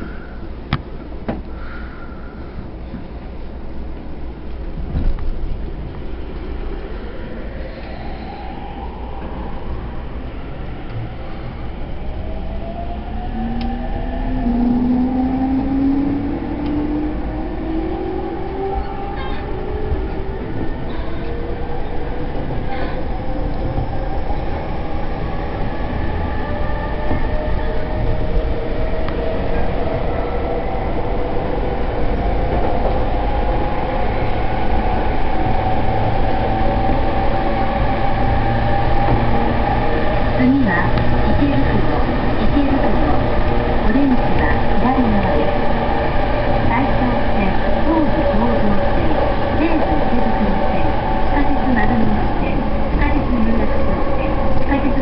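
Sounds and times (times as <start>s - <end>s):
wheels rumbling on rail: 0.0s - 55.0s.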